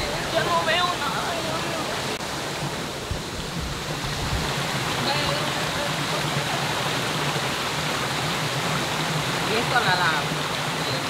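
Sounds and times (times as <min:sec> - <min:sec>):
creek flowing over rocks: 0:00.0 - 0:11.0.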